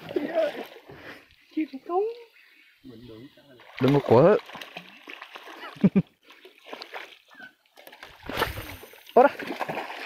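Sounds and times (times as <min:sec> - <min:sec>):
fish thrashing and splashing: 0:03.6 - 0:10.0.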